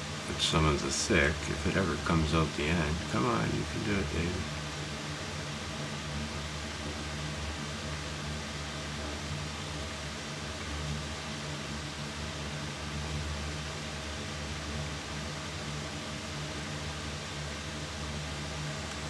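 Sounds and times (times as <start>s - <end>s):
electric fan humming and hissing: 0.0s - 19.0s.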